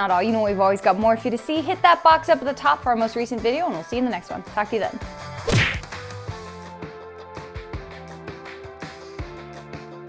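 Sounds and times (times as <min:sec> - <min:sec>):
background music with bass tones: 0:00.0 - 0:10.0.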